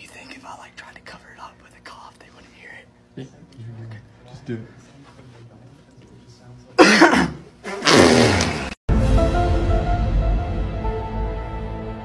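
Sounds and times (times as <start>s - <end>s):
man coughing harshly: 6.8s - 8.2s.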